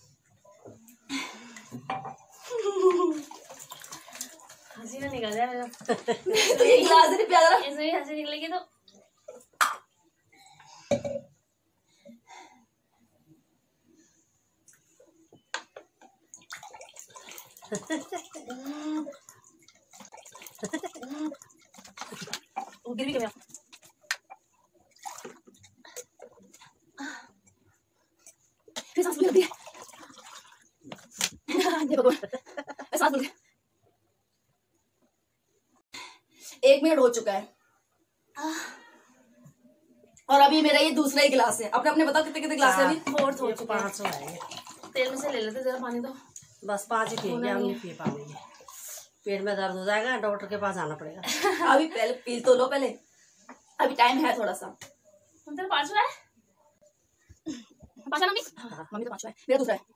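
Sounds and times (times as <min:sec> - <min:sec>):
gulping water: 0:01.4 - 0:07.0, 0:16.0 - 0:31.2, 0:42.6 - 0:46.3, 0:46.9 - 0:49.3
woman laughing: 0:02.5 - 0:03.3.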